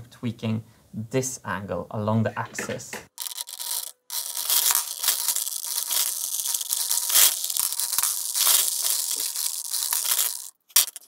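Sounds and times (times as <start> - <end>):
metal marbles clattering: 3.2 - 11.0.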